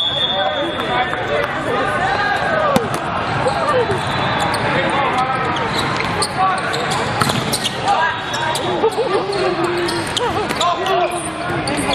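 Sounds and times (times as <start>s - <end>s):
volleyball strikes: 2.6s - 3.3s
sneakers squeaking on court: 3.4s - 4.8s, 5.4s - 11.9s.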